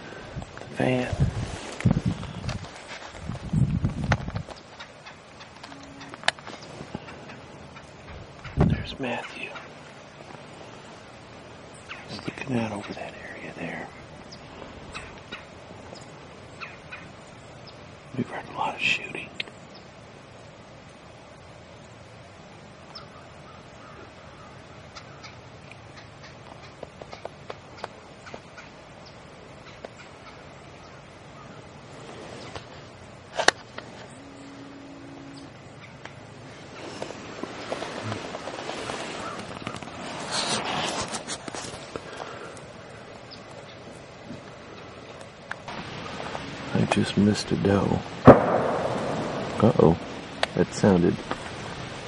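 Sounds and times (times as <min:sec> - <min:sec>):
crows cawing: 0:16.6 - 0:17.2, 0:22.9 - 0:25.4, 0:38.9 - 0:40.0
sharp crack: 0:45.1 - 0:52.0.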